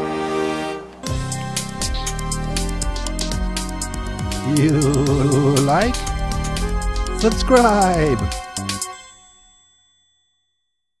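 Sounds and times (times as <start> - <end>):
bell-like ding: 8.8 - 10.8.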